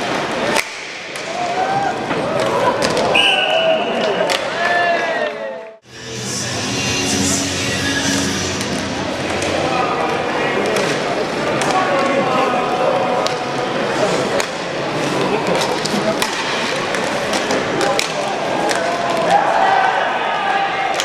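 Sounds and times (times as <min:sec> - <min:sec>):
murmur of crowd and voices: 0:00.0 - 0:21.0.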